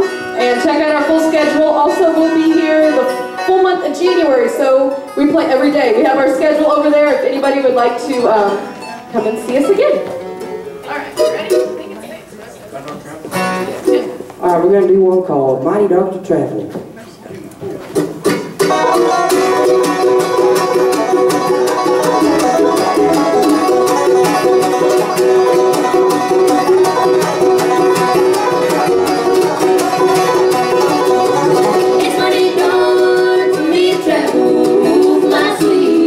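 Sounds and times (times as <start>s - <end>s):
bluegrass band playing: 0.0s - 36.0s.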